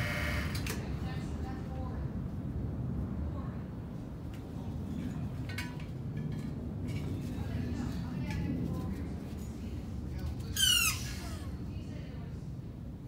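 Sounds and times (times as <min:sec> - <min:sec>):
hydraulic pump drone: 0:00.0 - 0:00.6
faint squeaks: 0:10.4 - 0:11.5.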